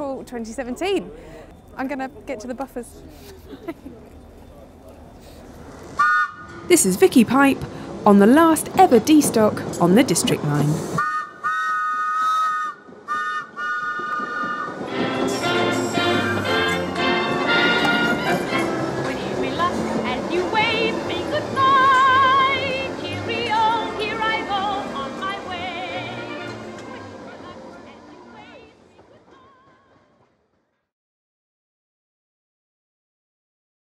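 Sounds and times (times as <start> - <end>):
train horn blasts: 6.0 - 6.5, 11.0 - 19.1
music with vibrato singing: 14.8 - 30.2.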